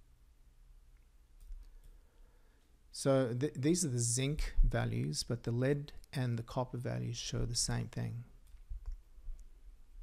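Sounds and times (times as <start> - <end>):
person speaking: 2.9 - 8.4.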